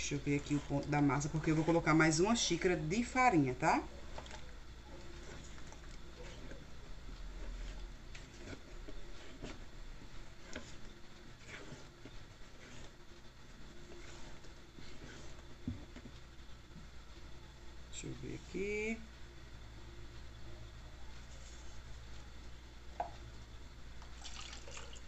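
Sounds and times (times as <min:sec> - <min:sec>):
spatula scraping batter in a bowl: 0:00.0 - 0:16.0.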